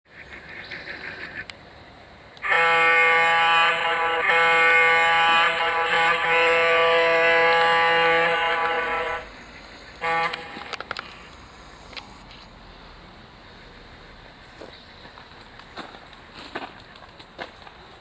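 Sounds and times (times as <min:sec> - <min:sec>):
model locomotive air horn: 0:02.4 - 0:09.4, 0:10.0 - 0:11.3.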